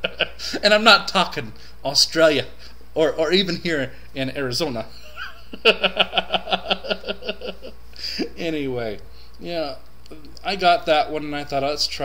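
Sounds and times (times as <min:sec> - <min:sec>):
man laughing: 0:00.0 - 0:00.6, 0:04.9 - 0:08.4.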